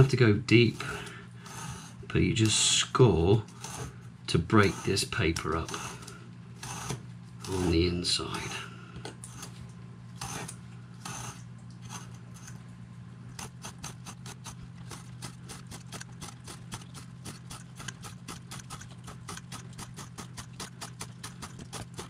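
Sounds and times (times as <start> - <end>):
blade scratching paper: 0.0 - 2.0, 3.5 - 8.6, 10.2 - 12.6, 13.4 - 22.0.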